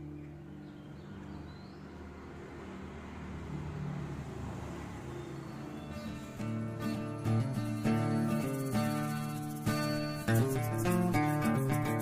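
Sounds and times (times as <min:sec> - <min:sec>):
held music tones: 0:05.9 - 0:12.0
plucked notes: 0:06.4 - 0:12.0.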